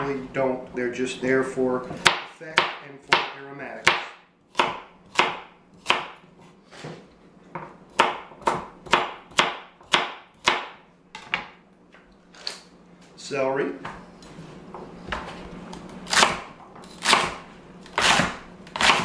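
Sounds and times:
knife chopping on cutting board: 0:02.0 - 0:06.2, 0:07.6 - 0:10.8, 0:16.1 - 0:19.0.

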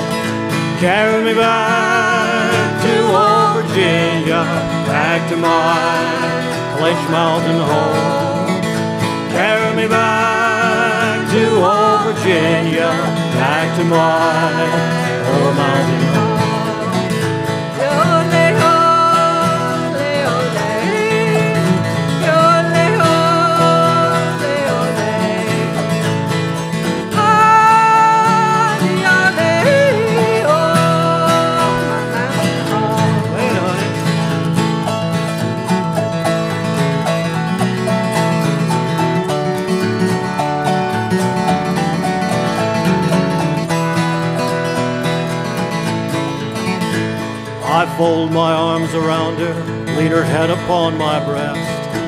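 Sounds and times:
acoustic guitar: 0:00.0 - 0:52.0
autoharp: 0:00.0 - 0:52.0.

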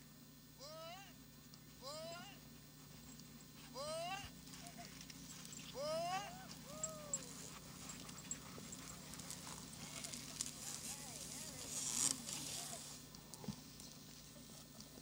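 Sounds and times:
sled dogs yelping: 0:03.7 - 0:10.9
faint clicks and crunches: 0:08.0 - 0:15.0.

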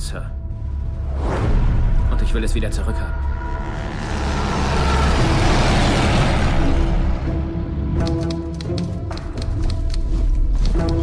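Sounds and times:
loud rushing rumble: 0:03.0 - 0:08.0.

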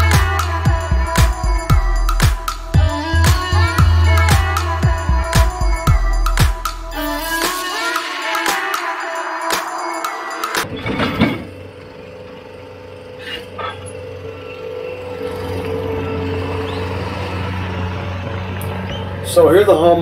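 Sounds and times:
music: 0:00.0 - 0:20.0
diesel engine running: 0:12.2 - 0:20.0.

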